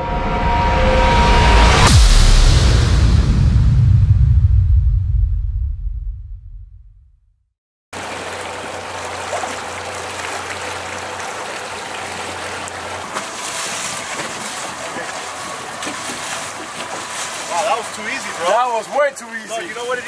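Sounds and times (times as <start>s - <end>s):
low engine hum: 8.0s - 20.0s
outboard motors idling: 8.0s - 20.0s
water sloshing and churning: 8.0s - 20.0s.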